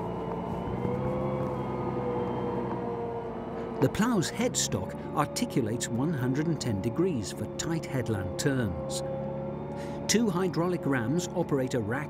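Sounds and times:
tractor diesel engine running: 0.0 - 12.0.

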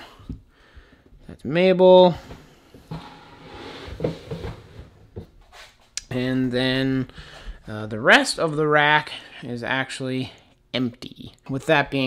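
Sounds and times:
plastic tub sliding: 2.1 - 5.3.

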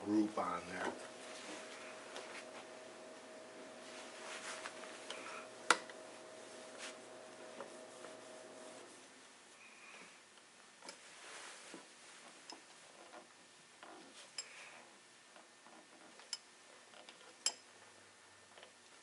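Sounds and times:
cloth rubbing: 1.0 - 2.8, 3.6 - 9.2, 11.0 - 13.0.

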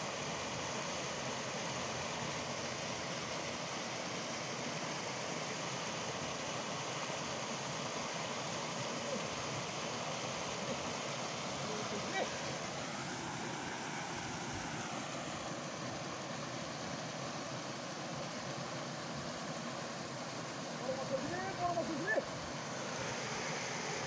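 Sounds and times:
water rushing through sluice gate: 0.0 - 24.0.

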